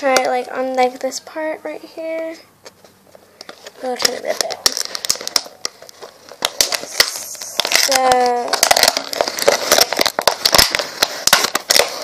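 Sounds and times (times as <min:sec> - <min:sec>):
plastic bottle crinkling: 0:02.6 - 0:12.0.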